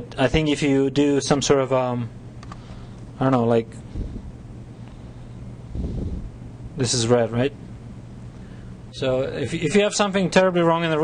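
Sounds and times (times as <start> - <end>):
low electrical hum: 0.0 - 11.0
microphone rumbling: 3.8 - 4.5, 5.6 - 6.6.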